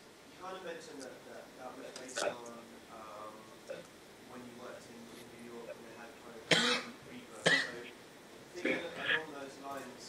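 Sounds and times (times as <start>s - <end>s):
faint murmuring voices: 0.4s - 10.0s
person coughing: 6.5s - 6.9s, 7.5s - 7.8s.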